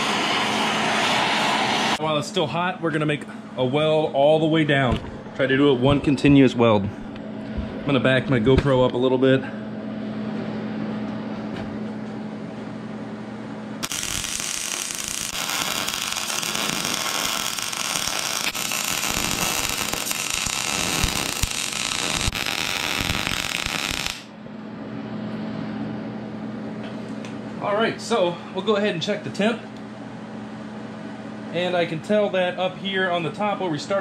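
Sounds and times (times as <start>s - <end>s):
steady low hum: 0.0s - 34.0s
welding arc: 13.8s - 24.3s.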